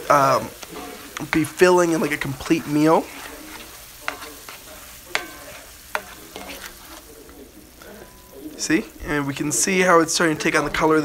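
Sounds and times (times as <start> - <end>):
sauce sizzling and bubbling: 0.0 - 11.0
utensil knocking against pan: 3.2 - 6.7.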